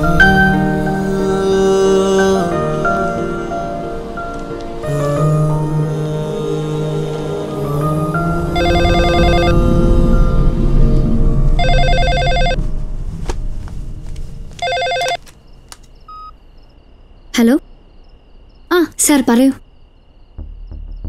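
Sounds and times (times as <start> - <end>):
electronic telephone ring: 8.6 - 9.6, 11.6 - 12.6, 14.6 - 15.3.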